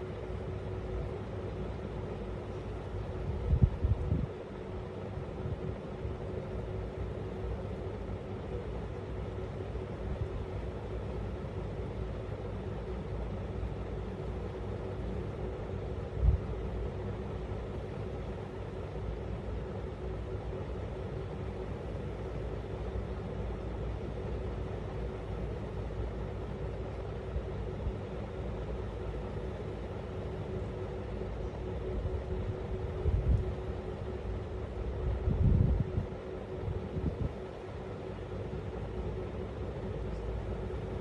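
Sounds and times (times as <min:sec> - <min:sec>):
low mechanical hum and rumble: 0:00.0 - 0:41.0.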